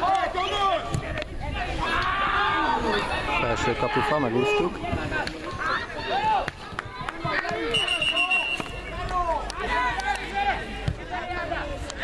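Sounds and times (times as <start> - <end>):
children and adults shouting: 0.0 - 11.7
whistle: 7.7 - 8.8.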